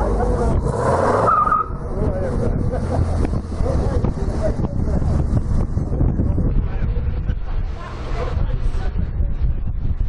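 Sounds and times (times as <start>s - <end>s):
people talking: 0.0s - 0.8s, 1.8s - 9.8s
wind buffeting microphone: 0.0s - 10.0s.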